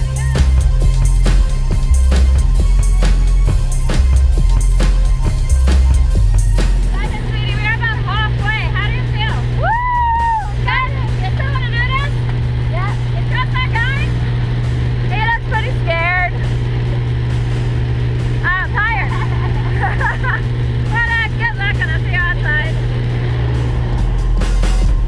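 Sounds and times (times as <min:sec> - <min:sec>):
people shouting and laughing: 0:00.0 - 0:00.8, 0:09.0 - 0:12.1, 0:18.5 - 0:21.1
plane engine and propeller drone: 0:00.0 - 0:25.0.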